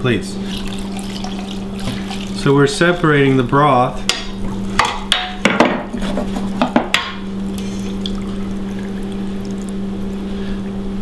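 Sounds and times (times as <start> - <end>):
broth pouring through strainer: 0.4 - 3.3, 7.5 - 10.4.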